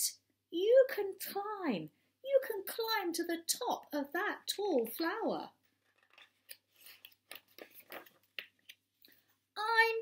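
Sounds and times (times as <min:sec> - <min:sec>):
book pages rustling: 0:05.6 - 0:09.4.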